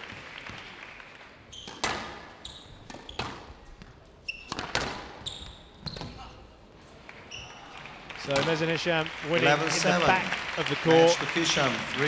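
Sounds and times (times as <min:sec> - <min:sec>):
shoes squeaking on court: 0:01.5 - 0:06.4, 0:07.2 - 0:07.7.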